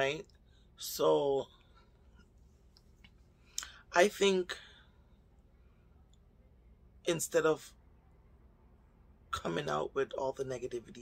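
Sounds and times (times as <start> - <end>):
person speaking: 3.6 - 4.8, 9.3 - 11.0.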